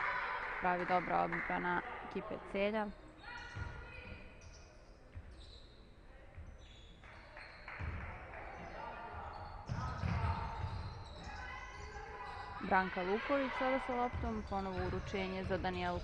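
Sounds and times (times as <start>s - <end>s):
voices: 0.0s - 4.3s, 8.4s - 16.0s
basketball bouncing on wooden floor: 14.0s - 16.0s.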